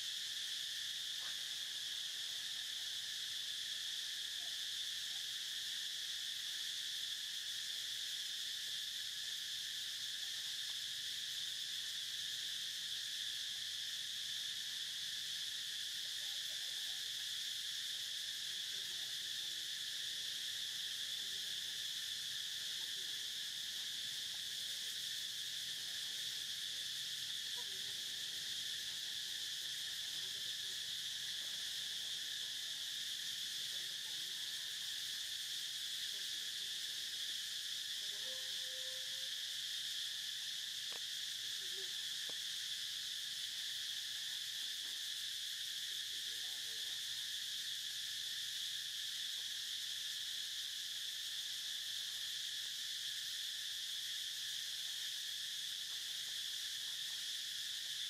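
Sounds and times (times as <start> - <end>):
insect chorus drone: 0.0 - 58.0.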